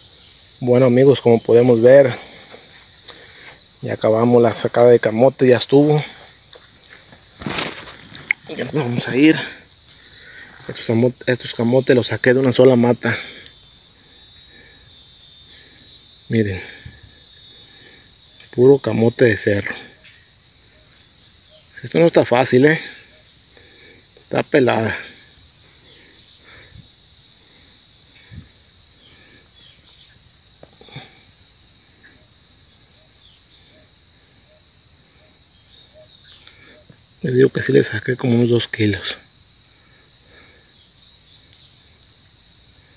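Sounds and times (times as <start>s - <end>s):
insects trilling: 0.0s - 42.9s
soil rustling and knocking: 6.5s - 9.1s.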